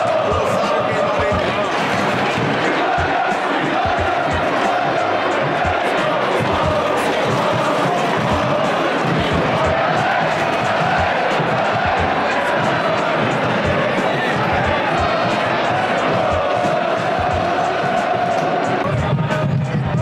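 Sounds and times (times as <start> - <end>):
stadium crowd chanting and singing: 0.0 - 20.0.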